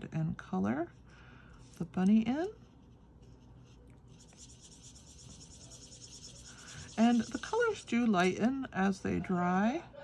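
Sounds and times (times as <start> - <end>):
marker scratching on cardstock: 1.6 - 8.3.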